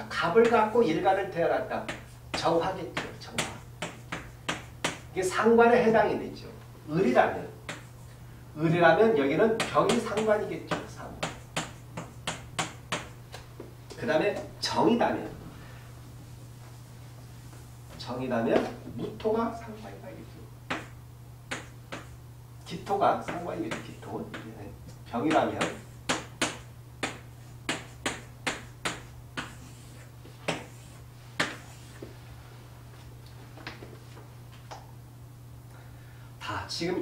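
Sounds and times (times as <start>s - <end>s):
steady low hum: 0.0s - 37.0s
chalk tapping on chalkboard: 1.8s - 5.1s, 7.6s - 8.0s, 9.6s - 13.2s, 20.7s - 22.2s, 23.2s - 24.6s, 25.3s - 32.1s.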